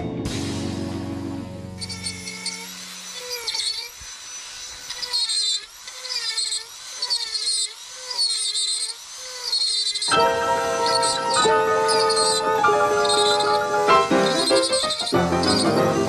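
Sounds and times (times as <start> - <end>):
rotary tool grinding wood: 1.8 - 16.0.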